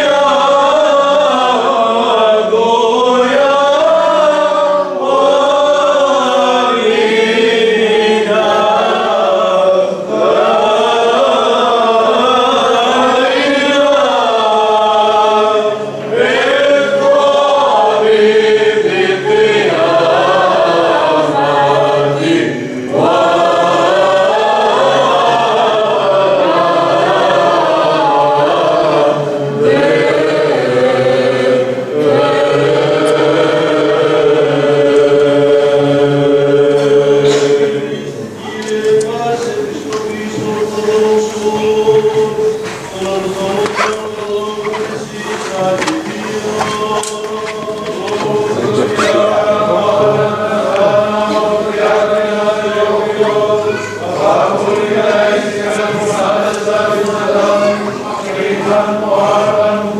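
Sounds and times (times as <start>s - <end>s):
choir chanting a hymn: 0.0s - 59.9s.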